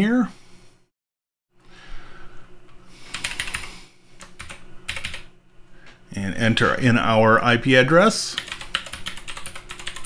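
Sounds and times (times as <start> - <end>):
computer keyboard typing: 3.1 - 5.3, 8.4 - 10.0.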